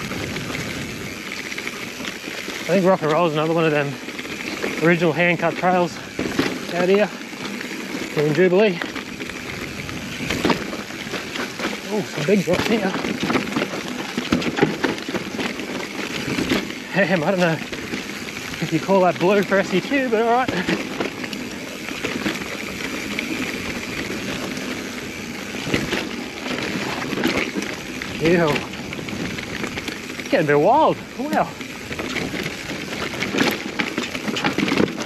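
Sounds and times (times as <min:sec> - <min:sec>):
wind rush on microphone: 0:00.0 - 0:02.0, 0:09.4 - 0:11.1
bike knocking on rocks: 0:00.0 - 0:35.0
mountain bike tyres rattling on trail: 0:00.0 - 0:35.0.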